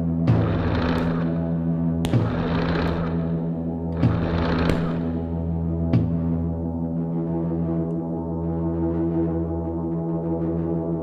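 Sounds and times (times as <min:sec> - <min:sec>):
low droning electronic chord: 0:00.0 - 0:11.0
heavy percussive hit: 0:02.0 - 0:03.4.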